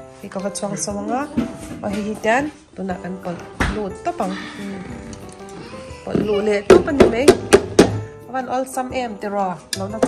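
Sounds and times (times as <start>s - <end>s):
light background music: 0.0s - 10.0s.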